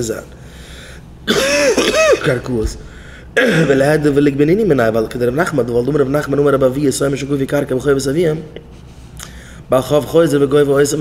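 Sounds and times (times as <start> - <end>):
man clearing his throat: 1.3 - 2.5, 3.4 - 3.9.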